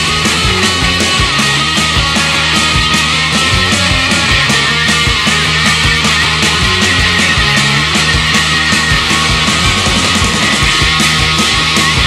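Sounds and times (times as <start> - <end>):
heavy rock band playing: 0.0 - 12.0.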